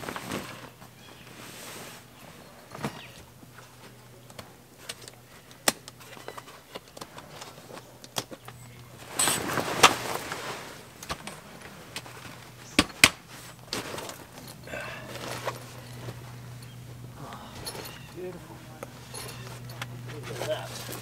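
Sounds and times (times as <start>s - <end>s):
canvas rustling: 0.0s - 4.0s, 8.8s - 21.0s
faint low hum: 0.0s - 21.0s.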